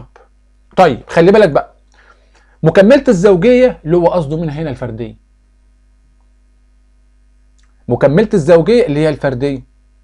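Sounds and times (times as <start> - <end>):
person speaking: 0.0 - 5.3, 7.6 - 9.8
low electrical hum: 0.0 - 10.0.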